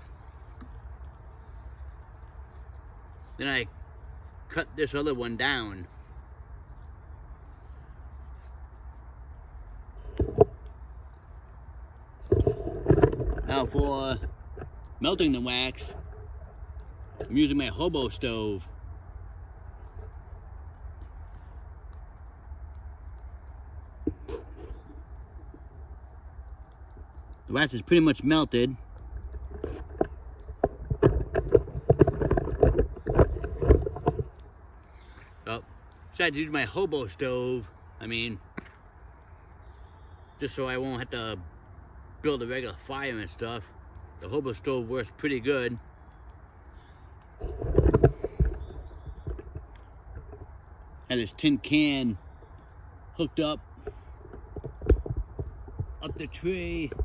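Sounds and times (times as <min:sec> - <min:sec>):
wood fire crackling: 0:00.0 - 0:57.0
faint ticks: 0:06.1 - 0:36.2
microphone handling thumps: 0:47.4 - 0:49.6.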